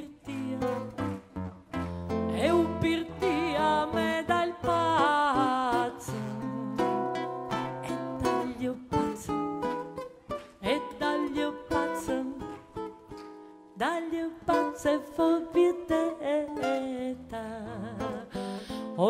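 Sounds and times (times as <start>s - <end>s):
plucked acoustic guitar: 0.0s - 19.0s.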